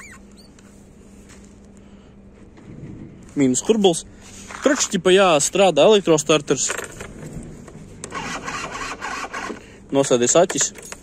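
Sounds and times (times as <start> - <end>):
starter motor cranking: 8.0 - 11.0.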